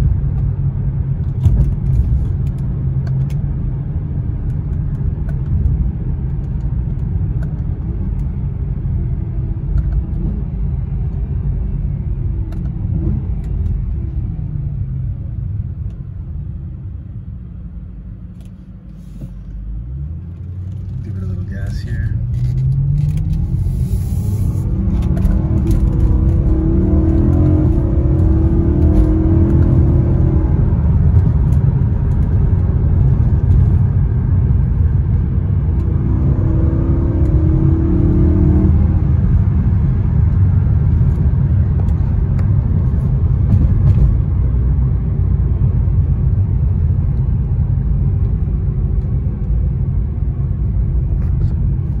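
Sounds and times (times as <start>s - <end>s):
road noise inside car: 0.0s - 52.0s
car engine under throttle: 19.4s - 52.0s.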